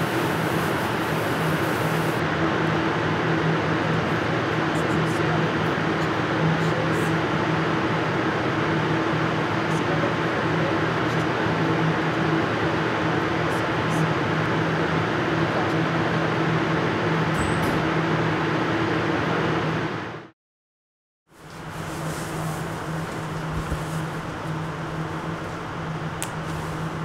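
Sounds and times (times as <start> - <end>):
water spraying from hose: 0.0 - 2.2
mechanical hum: 0.0 - 20.3, 21.3 - 27.0.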